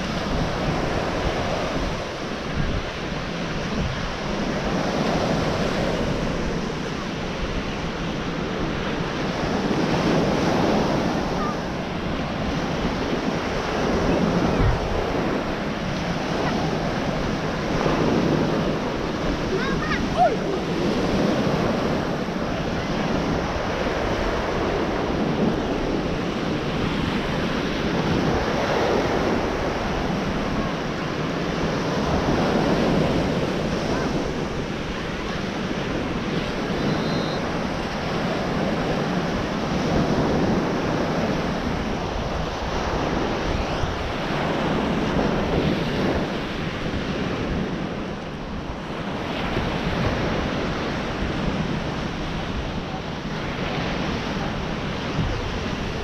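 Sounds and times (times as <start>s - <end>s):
surf breaking on beach: 0.0s - 56.0s
wind rumbling on microphone: 0.0s - 56.0s.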